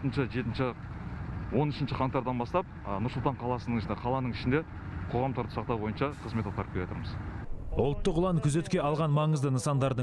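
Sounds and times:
man speaking: 6.4s - 10.0s.

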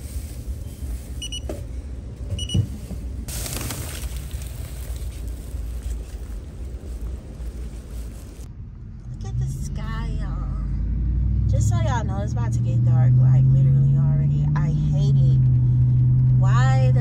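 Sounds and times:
short electronic beeps: 1.2s - 1.5s, 2.4s - 2.6s
plastic bag rustling: 3.3s - 8.5s.

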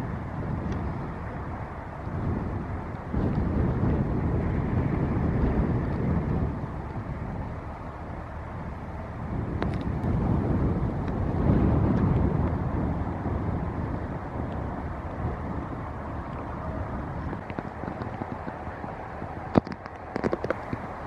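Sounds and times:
passing ship engine: 0.0s - 21.0s
wind on microphone: 0.0s - 21.0s.

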